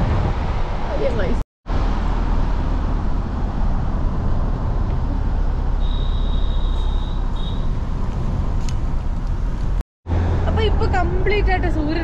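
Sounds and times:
tyre and wind rumble: 0.0s - 12.0s.

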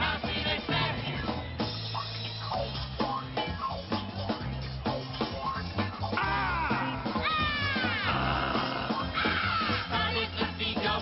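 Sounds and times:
rock song: 0.0s - 11.0s
wailing falling cries: 6.2s - 9.9s.

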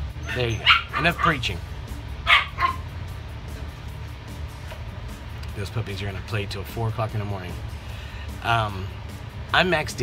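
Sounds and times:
low background music: 0.0s - 10.0s
puppies yipping: 0.2s - 1.5s, 2.2s - 2.9s.

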